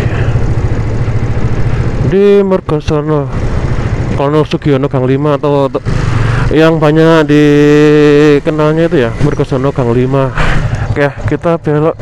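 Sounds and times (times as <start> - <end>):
motorcycle engine running: 0.0 - 12.0
wind and road noise: 0.0 - 12.0.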